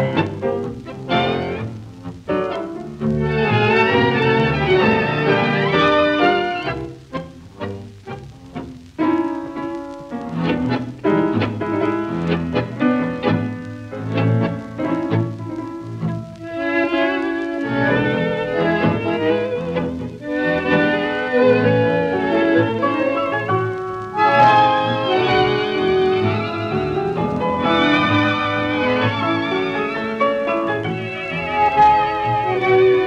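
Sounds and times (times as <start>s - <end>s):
tango music with violins: 0.0s - 33.0s.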